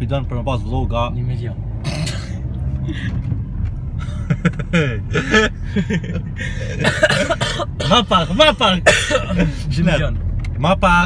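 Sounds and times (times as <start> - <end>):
car cabin rumble: 0.0 - 11.0
man coughing or laughing: 4.1 - 8.2, 8.8 - 9.6.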